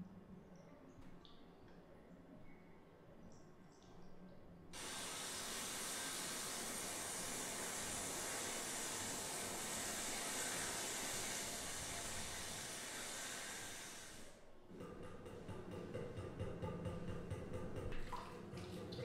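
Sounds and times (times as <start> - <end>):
tap water running into sink: 4.8 - 14.3, 16.0 - 19.0.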